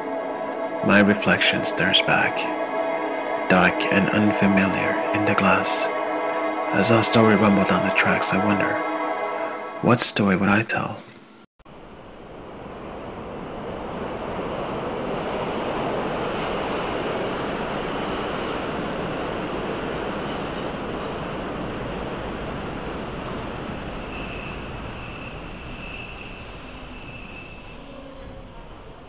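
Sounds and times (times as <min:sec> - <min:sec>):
steady rushing noise: 0:00.0 - 0:11.0, 0:11.7 - 0:27.2.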